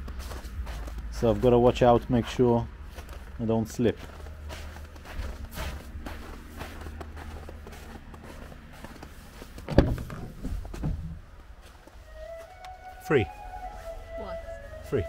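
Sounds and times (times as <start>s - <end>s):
footsteps crunching on snow: 0.0s - 9.7s, 11.4s - 15.0s.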